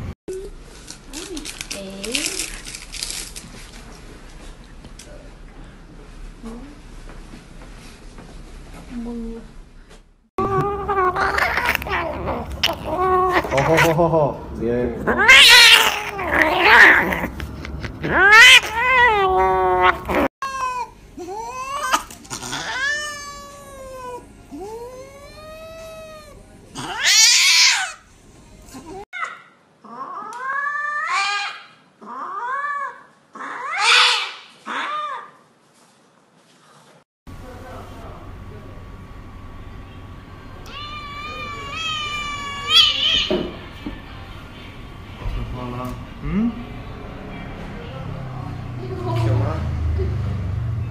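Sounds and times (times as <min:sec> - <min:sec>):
cats yowling: 0:10.4 - 0:14.0, 0:15.0 - 0:17.4, 0:18.0 - 0:28.0, 0:28.7 - 0:35.4, 0:40.6 - 0:43.6
cats hissing snarls: 0:10.6 - 0:14.1, 0:15.0 - 0:20.9, 0:21.6 - 0:28.0
kitten meowing in distress: 0:40.7 - 0:43.3.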